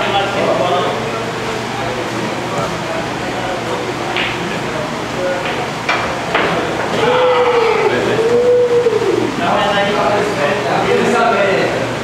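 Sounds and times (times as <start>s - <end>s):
long drawn-out vocal call: 6.9s - 9.4s.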